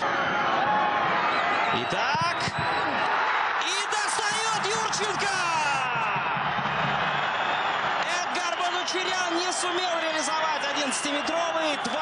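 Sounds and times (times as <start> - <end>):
stadium crowd noise: 0.0 - 12.0
man shouting: 3.6 - 6.2.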